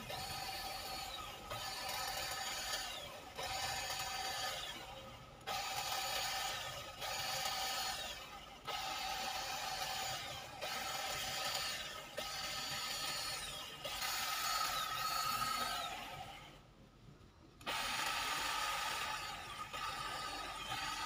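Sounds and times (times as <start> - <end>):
electric hedge trimmer clipping: 0.0 - 16.4, 17.6 - 21.0.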